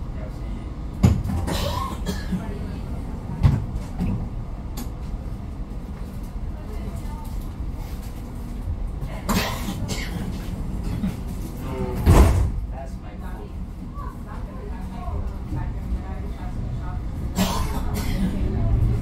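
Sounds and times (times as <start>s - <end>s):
tram low hum: 0.0s - 19.0s.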